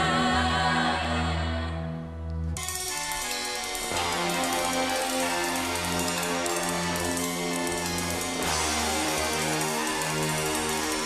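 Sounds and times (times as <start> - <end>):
sustained rock band chord: 2.6 - 11.0.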